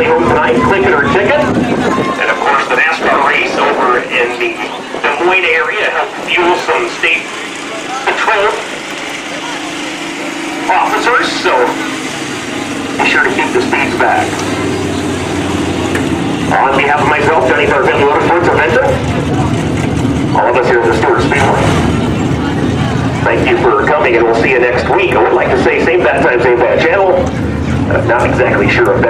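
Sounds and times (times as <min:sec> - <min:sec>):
indistinct voices: 0:00.0 - 0:29.0
race car engine idling: 0:00.0 - 0:29.0.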